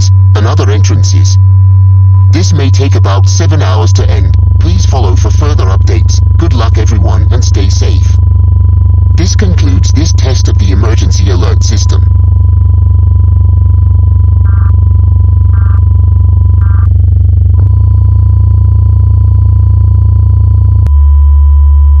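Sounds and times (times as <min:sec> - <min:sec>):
low electronic drone: 0:00.0 - 0:21.2
short data beeps: 0:14.5 - 0:16.9.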